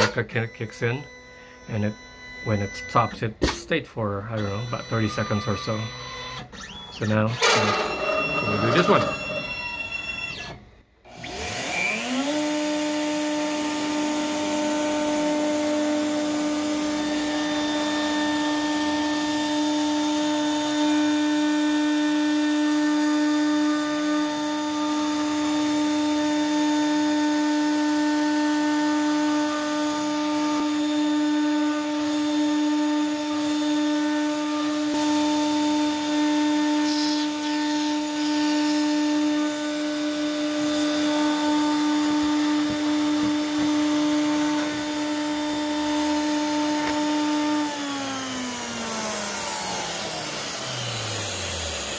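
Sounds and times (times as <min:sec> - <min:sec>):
router spindle whine: 0:04.4 - 0:51.9
vacuum running: 0:07.2 - 0:21.1, 0:38.9 - 0:51.9.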